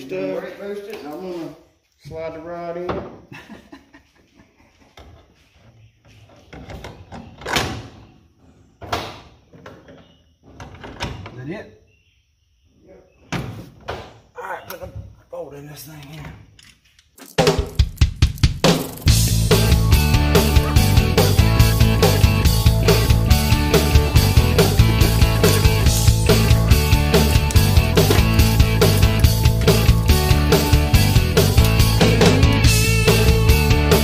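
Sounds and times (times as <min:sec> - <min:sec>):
rock music with steady beat: 0:17.4 - 0:34.0.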